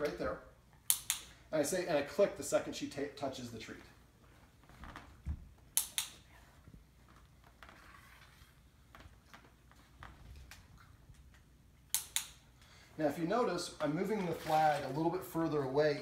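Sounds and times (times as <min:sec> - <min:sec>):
dog-training clicker clicks: 0:00.9 - 0:01.3.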